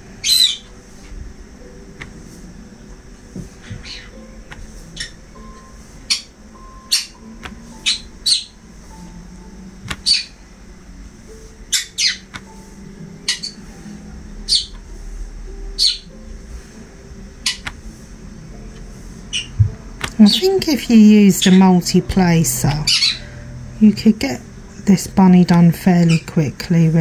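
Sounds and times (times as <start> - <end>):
bird chirping: 0.2 - 0.8, 3.6 - 4.2, 4.9 - 8.7, 10.0 - 10.4, 11.7 - 12.3, 13.2 - 13.6, 14.4 - 14.8, 15.8 - 16.1, 19.3 - 19.6, 20.2 - 23.3.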